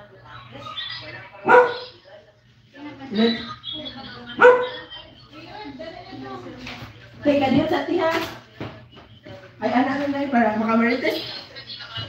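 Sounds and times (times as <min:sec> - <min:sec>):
quiet voices: 0:00.0 - 0:12.0
dog barking: 0:01.4 - 0:02.0, 0:04.4 - 0:04.8.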